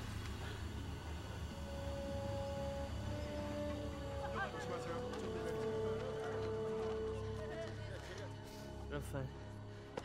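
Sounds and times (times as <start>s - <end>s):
steady low rumble: 0.0s - 9.8s
soft orchestral notes: 1.4s - 8.4s.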